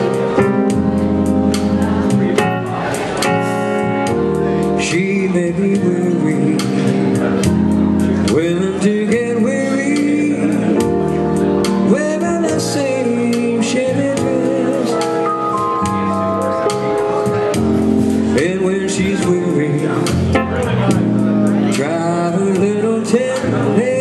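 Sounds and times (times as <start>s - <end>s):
electronic keyboard melody: 0.0s - 24.0s.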